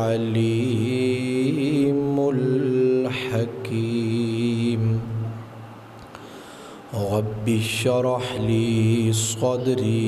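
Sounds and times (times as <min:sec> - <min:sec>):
man chanting melodically: 0:00.0 - 0:05.4, 0:06.9 - 0:10.0.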